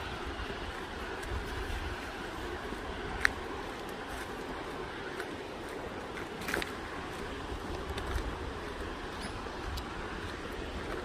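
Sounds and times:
steady hiss: 0:00.0 - 0:11.0
wind buffeting microphone: 0:00.0 - 0:11.0.

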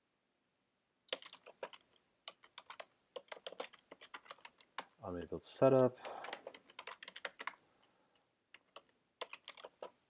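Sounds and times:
computer keyboard key clicks: 0:08.6 - 0:10.0.

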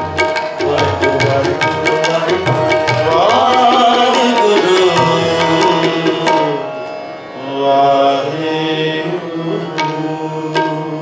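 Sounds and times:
harmonium chords: 0:00.0 - 0:11.0.

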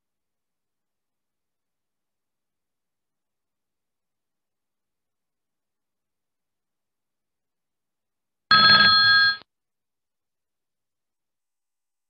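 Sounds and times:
electronic alert chime: 0:08.5 - 0:09.4.

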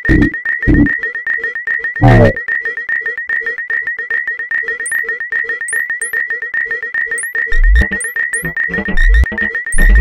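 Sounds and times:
clicky synthesized pulses: 0:00.0 - 0:01.0, 0:02.0 - 0:02.4, 0:04.8 - 0:06.4, 0:07.1 - 0:10.0
high rising chirps: 0:05.7 - 0:06.2, 0:07.2 - 0:08.6.

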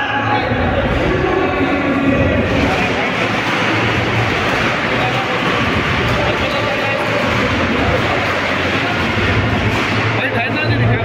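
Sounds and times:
crowd din: 0:00.0 - 0:11.0.

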